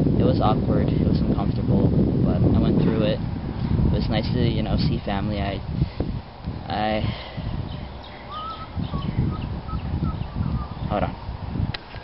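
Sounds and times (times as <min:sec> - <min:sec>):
low rumble: 0:02.1 - 0:11.8
birds chirping: 0:06.7 - 0:11.4.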